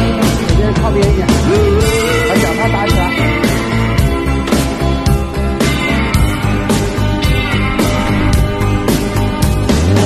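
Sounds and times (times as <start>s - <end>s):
rock music with guitar: 0.0s - 10.0s.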